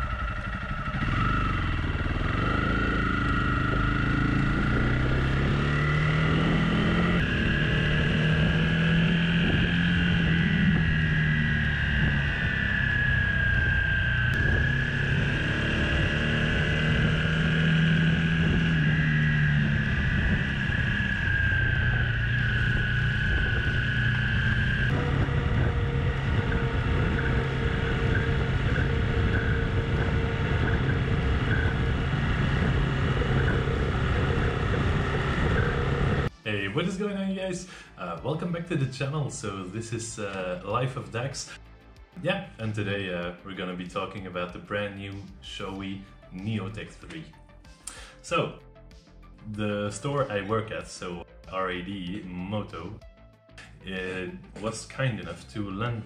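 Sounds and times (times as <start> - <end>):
motorcycle engine running: 0.0 - 36.4
wind rush: 6.3 - 36.3.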